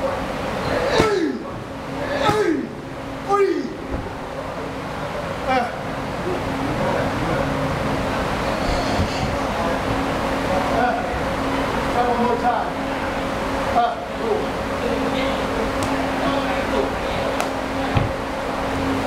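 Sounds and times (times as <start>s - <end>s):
constant hum: 0.0s - 19.0s.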